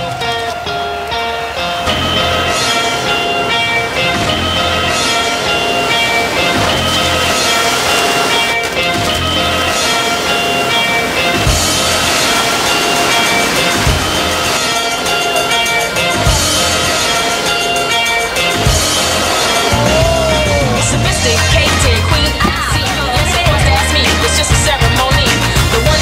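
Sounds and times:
background music with held notes: 0:00.0 - 0:26.0.

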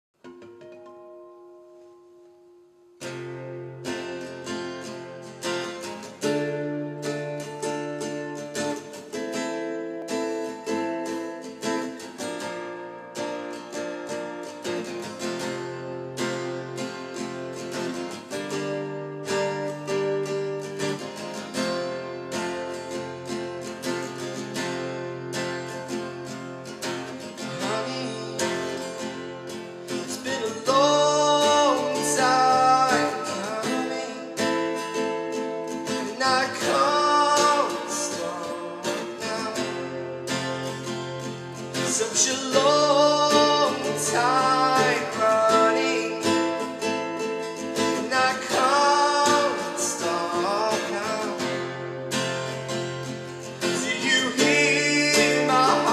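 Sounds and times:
acoustic guitar picking chords: 0:00.2 - 0:55.9
man singing: 0:27.4 - 0:29.3, 0:29.9 - 0:40.9, 0:41.6 - 0:52.1, 0:53.4 - 0:55.9.

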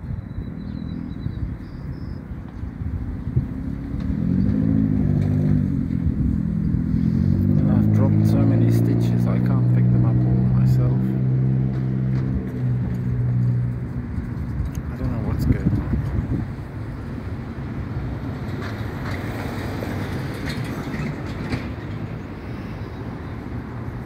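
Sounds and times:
vehicle engine droning: 0:00.0 - 0:24.0.

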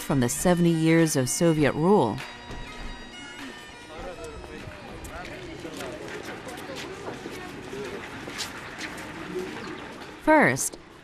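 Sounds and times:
street noise: 0:00.0 - 0:11.0.

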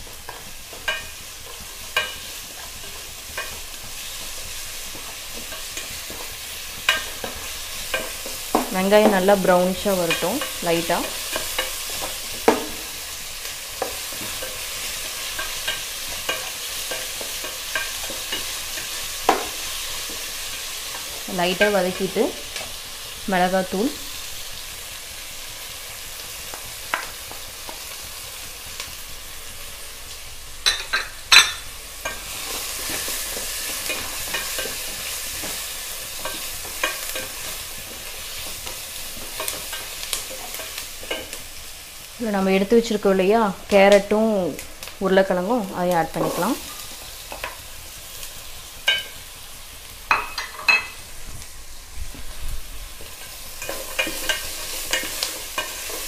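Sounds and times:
food sizzling in hot oil: 0:00.0 - 0:56.0.

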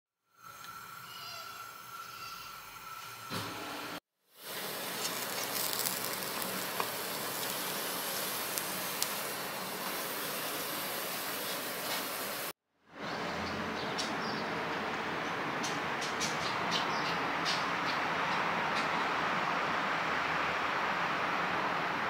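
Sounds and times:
steady outdoor hiss: 0:00.3 - 0:12.5.

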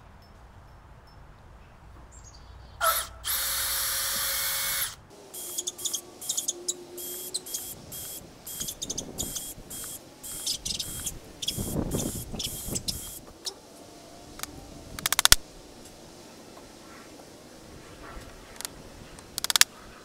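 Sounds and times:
cordless drill running into wood: 0:02.8 - 0:05.6
drill click: 0:03.2 - 0:13.2, 0:18.6 - 0:19.7.

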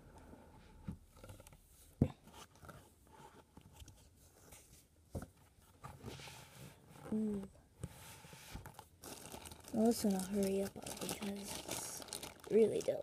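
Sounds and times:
cardboard rustling: 0:00.9 - 0:13.0.

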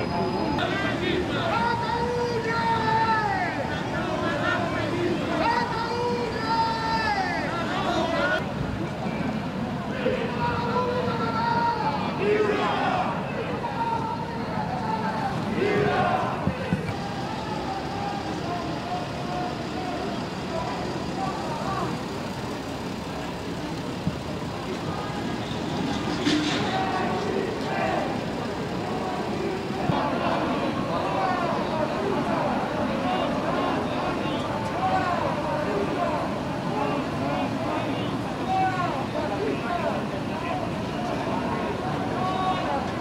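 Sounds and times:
indistinct crowd voices: 0:00.0 - 0:43.0
steady traffic noise: 0:00.0 - 0:43.0.

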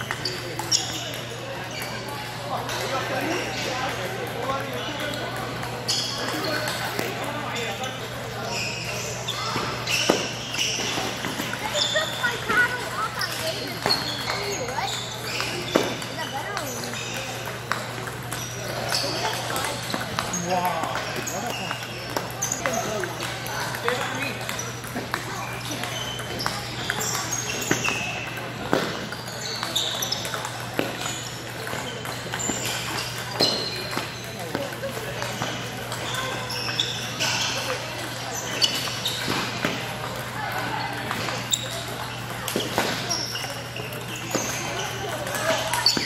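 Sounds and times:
chatter of voices: 0:00.0 - 0:46.0
table tennis balls clicking: 0:09.6 - 0:46.0.

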